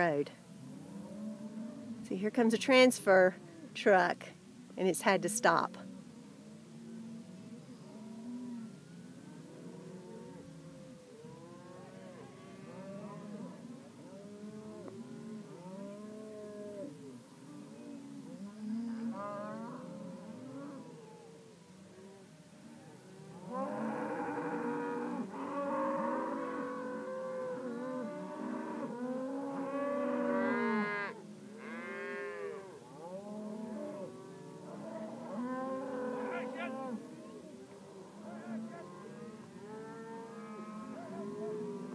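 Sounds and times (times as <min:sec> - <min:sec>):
cattle mooing: 0:07.8 - 0:21.2, 0:23.4 - 0:41.9.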